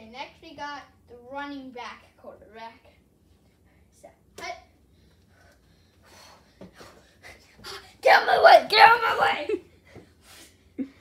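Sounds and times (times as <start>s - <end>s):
child breathing faintly: 4.8s - 8.0s.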